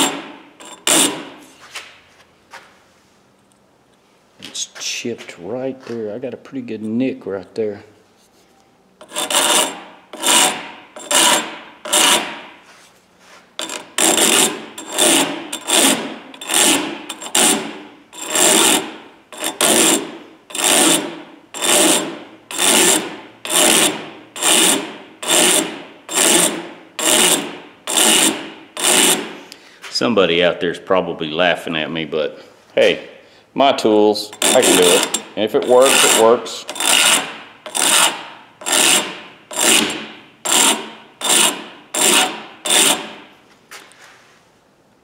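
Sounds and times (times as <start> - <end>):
hand file rasping on steel: 0.0 - 1.4, 9.0 - 12.5, 13.6 - 29.4, 34.3 - 43.3.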